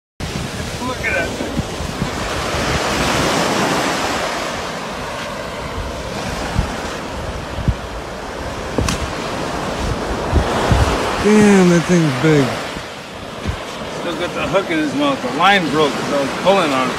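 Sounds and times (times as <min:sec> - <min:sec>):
wind thumping on microphone: 0:00.2 - 0:14.5
surf washing onto beach: 0:00.2 - 0:16.9.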